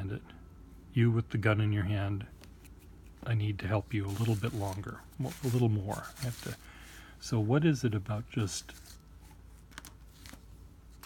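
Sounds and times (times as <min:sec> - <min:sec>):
rustle of pen over paper: 0:02.4 - 0:06.7, 0:08.3 - 0:11.0.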